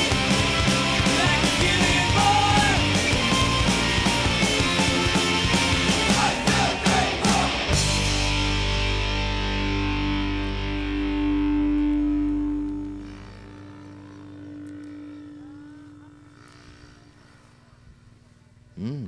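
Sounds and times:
distorted electric guitar chord: 0:00.0 - 0:17.8.

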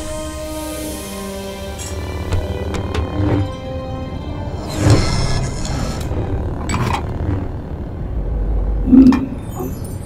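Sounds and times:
steady low rumble: 0:04.2 - 0:09.6.

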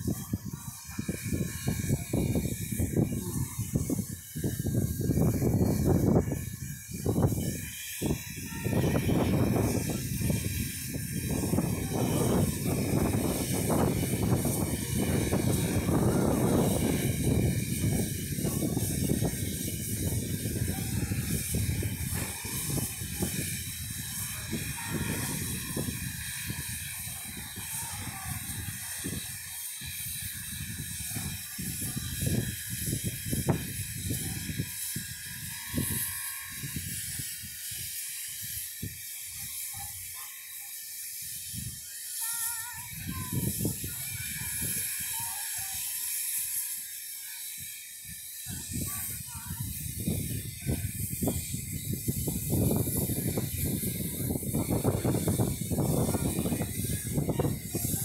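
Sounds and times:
steam locomotive hissing: 0:00.0 - 0:58.0.

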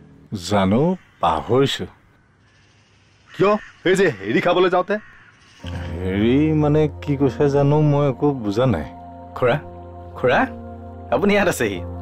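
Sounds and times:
low background music hum: 0:05.6 - 0:12.0.

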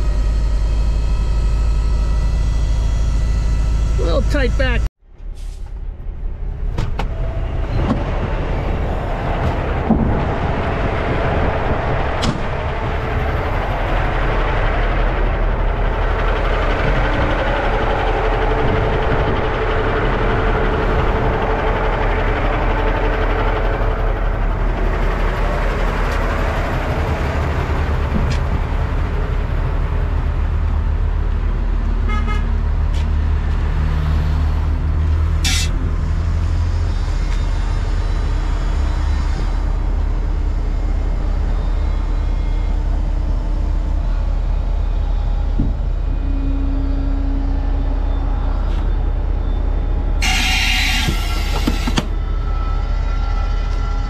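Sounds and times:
diesel truck engine running: 0:00.0 - 0:53.0.

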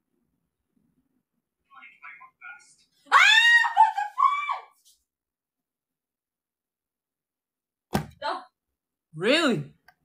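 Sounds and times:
woman shrieking: 0:03.1 - 0:04.8.

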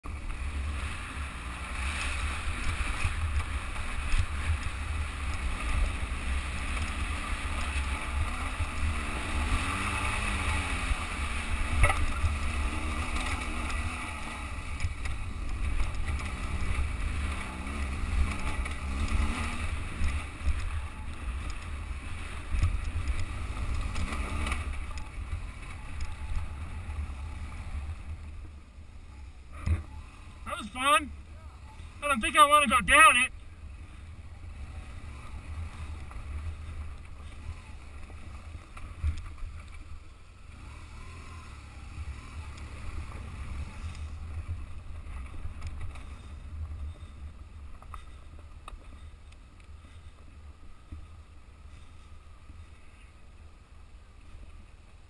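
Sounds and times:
motorcycle engine revving: 0:00.0 - 0:32.0, 0:33.6 - 0:49.1.

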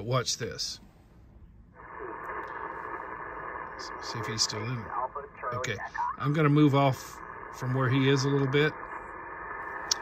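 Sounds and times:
radio receiver static hiss: 0:01.7 - 0:10.0.

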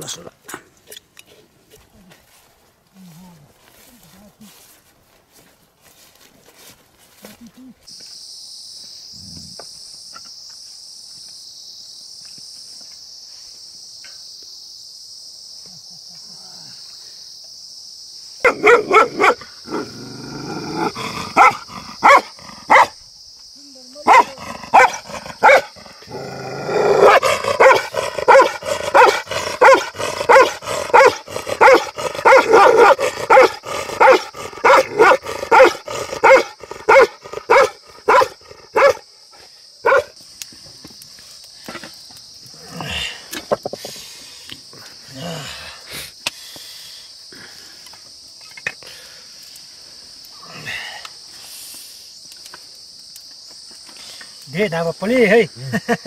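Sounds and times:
high-pitched hiss: 0:06.5 - 0:56.0
dog barking: 0:18.4 - 0:19.5, 0:21.3 - 0:23.0, 0:24.0 - 0:25.7, 0:26.9 - 0:39.0, 0:39.8 - 0:40.1.

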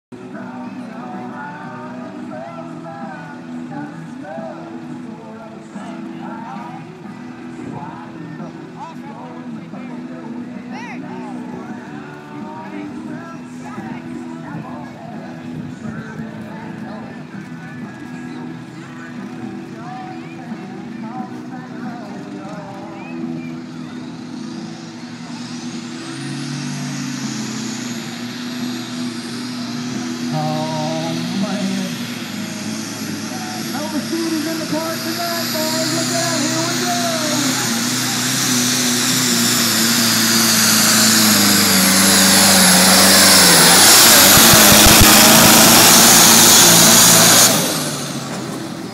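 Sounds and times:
tractor diesel engine running: 0:00.0 - 0:48.9
people talking: 0:00.1 - 0:48.9.

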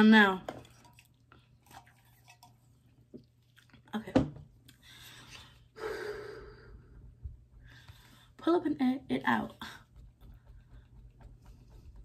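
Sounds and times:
person exhaling hard: 0:05.8 - 0:06.8.

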